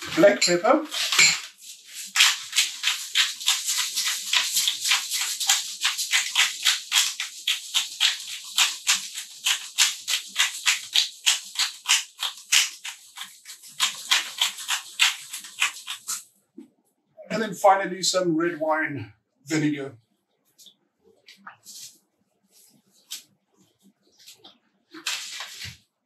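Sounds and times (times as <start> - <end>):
pepper mill grinding: 0.1 - 16.2.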